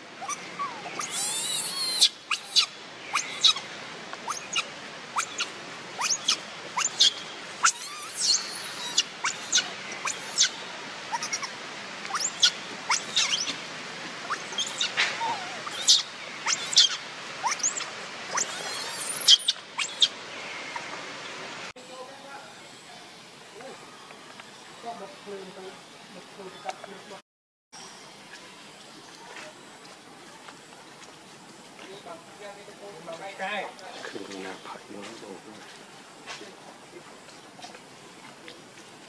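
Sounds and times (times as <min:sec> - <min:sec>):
infant monkey squealing: 0:00.2 - 0:03.6, 0:04.2 - 0:13.6, 0:14.2 - 0:20.1.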